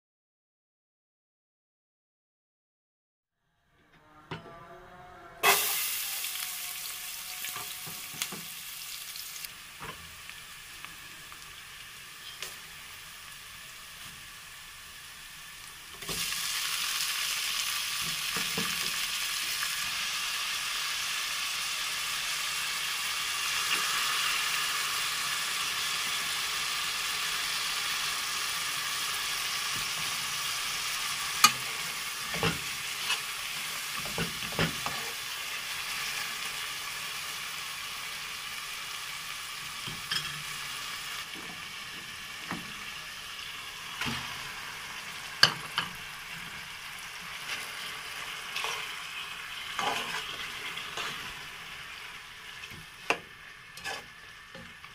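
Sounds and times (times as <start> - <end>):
onion and tomato sizzling in oil: 5.4 - 54.9.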